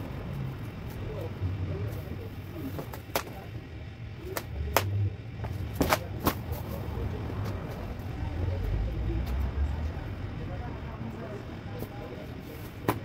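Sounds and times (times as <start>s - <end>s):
motor vehicle rumble: 0.0s - 13.0s.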